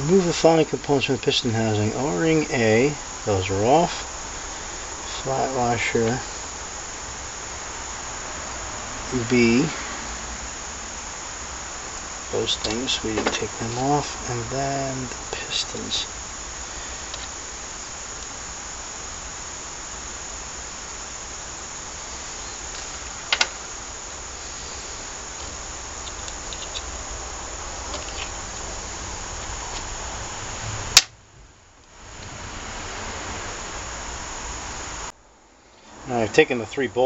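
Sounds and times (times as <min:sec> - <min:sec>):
background hiss: 0:00.0 - 0:37.0
loud sharp click: 0:31.0 - 0:31.2.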